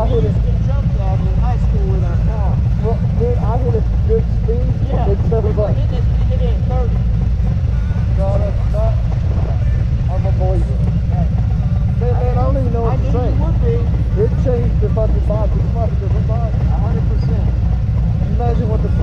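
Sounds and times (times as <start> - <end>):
men talking: 0.0 - 19.0
motorcycle engines idling: 0.0 - 19.0.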